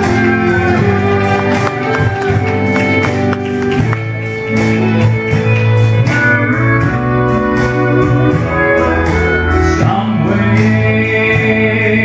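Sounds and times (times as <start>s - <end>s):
fiddle: 0.0s - 9.2s
pedal steel guitar: 0.0s - 11.1s.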